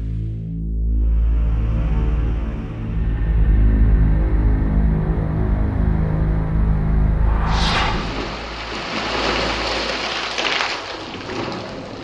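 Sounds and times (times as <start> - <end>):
water splashing from a spring: 7.6 - 12.0.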